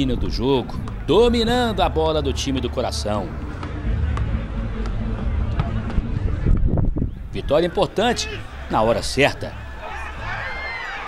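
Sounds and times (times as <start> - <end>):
steady low rumble: 0.0 - 7.4.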